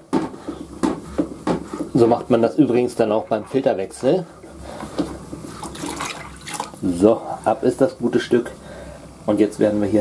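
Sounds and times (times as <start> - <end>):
water splashing into plastic tub: 5.5 - 6.8.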